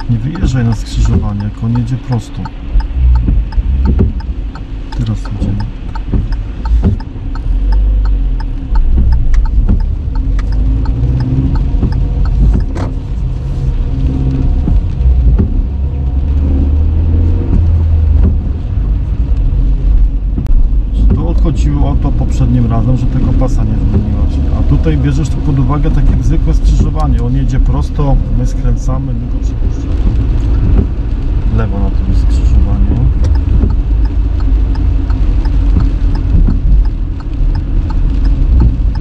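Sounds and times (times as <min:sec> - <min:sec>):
car engine accelerating: 0:00.0 - 0:39.0
turn indicator ticking: 0:00.0 - 0:39.0.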